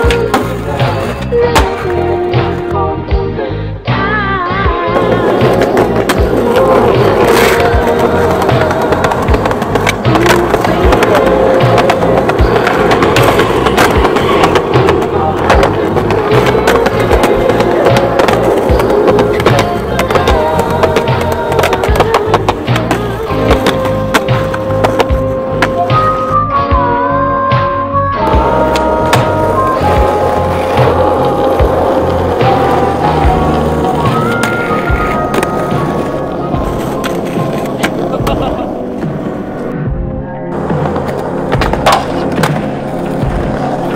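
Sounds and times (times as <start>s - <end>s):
skateboard wheels rolling on concrete: 0.0s - 3.0s, 4.0s - 39.8s, 40.5s - 43.9s
loud music track: 0.0s - 43.9s
skateboard clacks popping and landing: 4.9s - 26.4s, 28.3s - 39.5s, 40.7s - 43.9s
skateboard grinding on a ledge: 4.9s - 26.4s, 28.2s - 39.6s.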